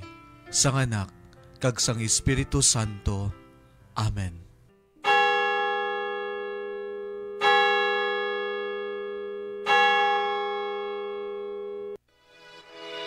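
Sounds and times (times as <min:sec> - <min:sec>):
church bell tolling: 0:05.0 - 0:12.0.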